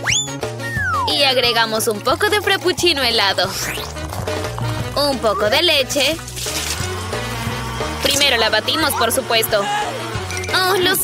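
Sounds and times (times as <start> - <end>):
background music: 0.0 - 11.0
milk frother whirring: 1.2 - 11.0
milk splashing: 1.2 - 11.0.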